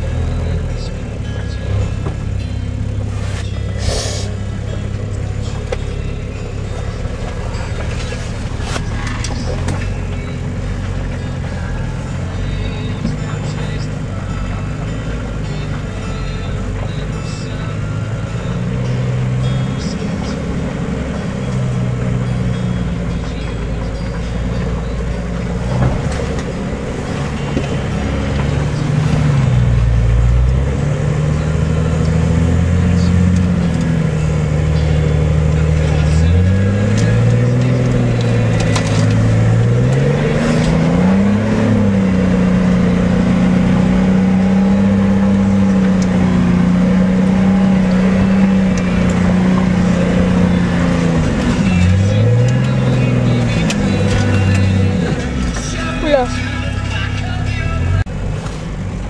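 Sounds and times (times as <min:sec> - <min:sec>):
engine revving: 0:00.0 - 0:59.0.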